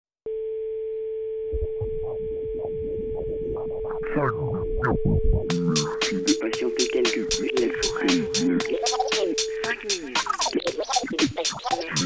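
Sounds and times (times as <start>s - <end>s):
pulsing rhythmic music: 5.4s - 12.0s.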